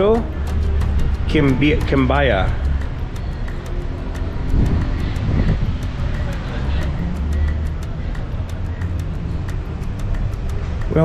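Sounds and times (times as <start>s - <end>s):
road traffic rumble: 0.0s - 11.0s
faint voices: 4.6s - 11.0s.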